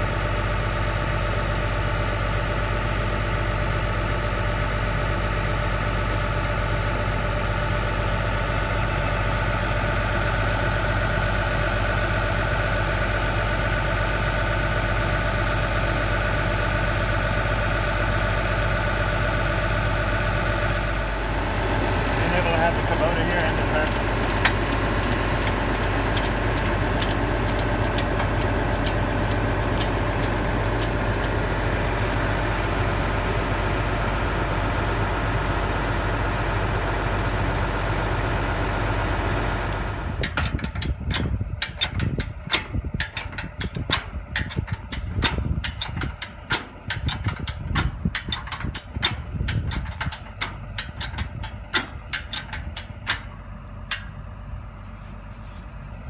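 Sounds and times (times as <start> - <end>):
tractor engine idling: 0.0 - 56.0
metal jack ratcheting clicks: 23.2 - 31.4, 40.2 - 53.3.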